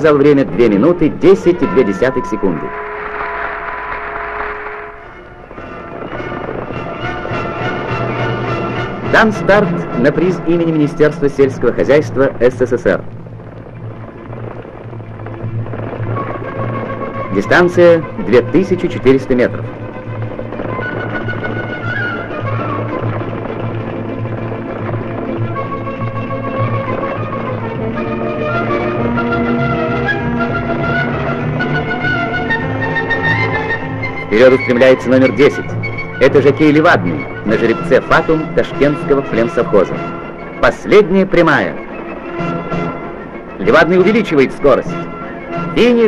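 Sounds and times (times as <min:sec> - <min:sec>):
music soundtrack: 0:00.0 - 0:46.0
crowd applause and cheering: 0:01.5 - 0:08.6.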